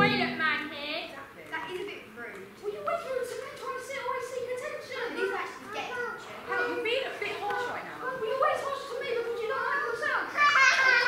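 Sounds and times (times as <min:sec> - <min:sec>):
children talking: 0:00.0 - 0:11.0.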